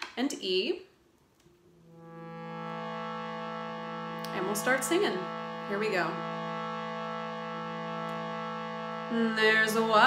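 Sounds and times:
shruti box drone: 0:01.4 - 0:10.0.

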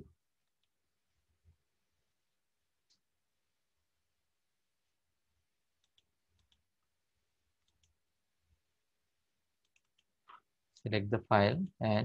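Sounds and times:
computer mouse clicks: 0:00.4 - 0:00.8, 0:05.8 - 0:06.7, 0:07.6 - 0:08.0, 0:09.6 - 0:10.5
man speaking: 0:10.9 - 0:12.0.

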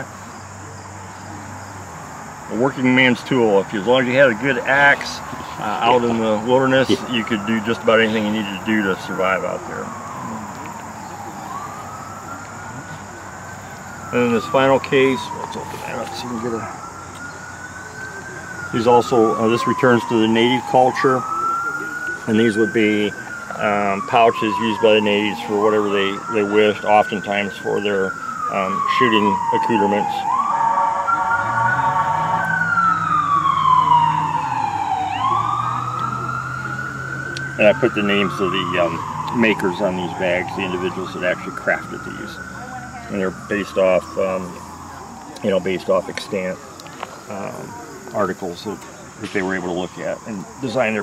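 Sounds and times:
faint siren wailing: 0:00.0 - 0:51.0.

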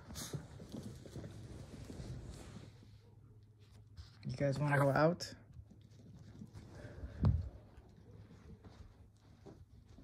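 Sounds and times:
dog paws scrambling on carpet: 0:00.0 - 0:10.0.

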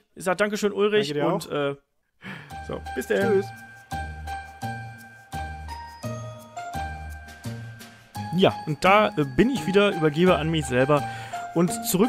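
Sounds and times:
bell-like tinkling notes: 0:02.5 - 0:12.0.

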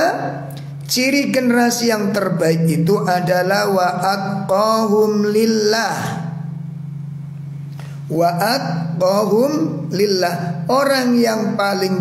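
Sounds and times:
person speaking: 0:00.0 - 0:06.5, 0:08.1 - 0:12.0
steady low hum: 0:00.0 - 0:12.0.

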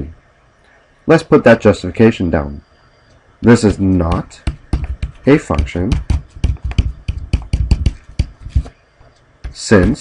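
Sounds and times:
stylus tapping on pen tablet: 0:03.7 - 0:08.7.

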